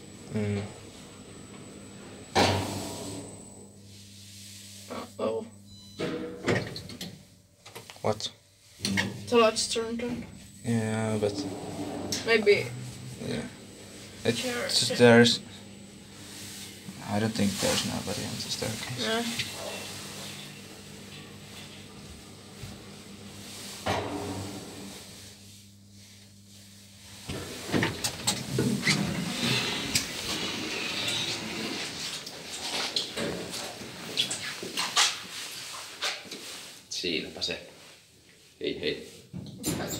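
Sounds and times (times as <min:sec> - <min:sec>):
elevator humming: 0:00.0 - 0:07.0, 0:08.9 - 0:25.4.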